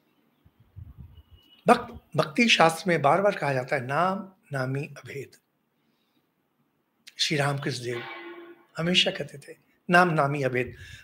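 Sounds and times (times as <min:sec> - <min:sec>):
man talking: 0:01.6 - 0:05.4, 0:07.1 - 0:08.1, 0:08.8 - 0:11.0.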